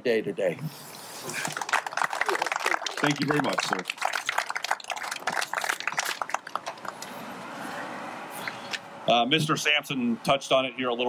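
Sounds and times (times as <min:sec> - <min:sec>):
small group applauding: 0:01.2 - 0:07.2.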